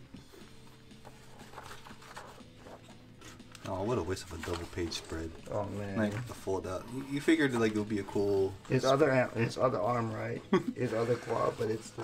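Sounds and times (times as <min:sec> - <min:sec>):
paper rustling and tapping: 0:00.2 - 0:09.2.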